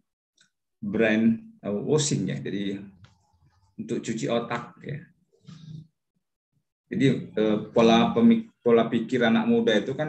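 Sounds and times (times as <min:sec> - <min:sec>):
man speaking: 0:00.8 - 0:03.0, 0:06.9 - 0:10.0.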